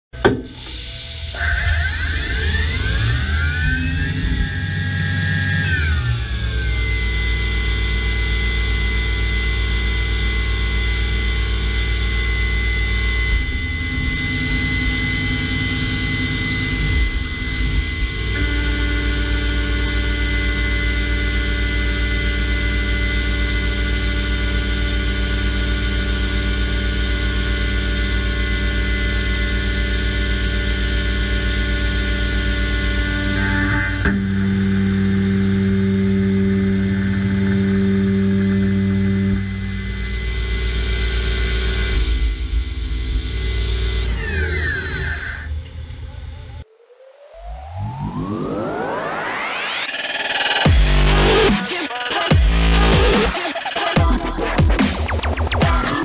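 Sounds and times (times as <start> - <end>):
low hum: 0.1 - 53.3
machine spindle whine: 0.2 - 56.0.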